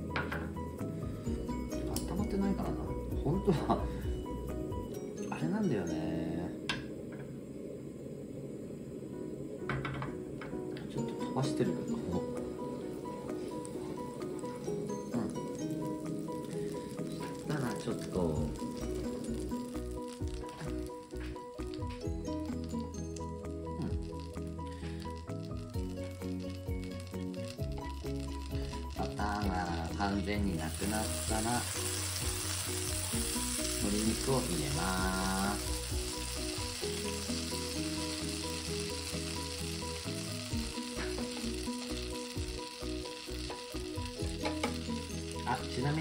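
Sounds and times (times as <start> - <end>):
butter sizzling in a frying pan: 0.0 - 6.0, 11.0 - 46.0
background music: 0.0 - 7.1, 8.8 - 46.0.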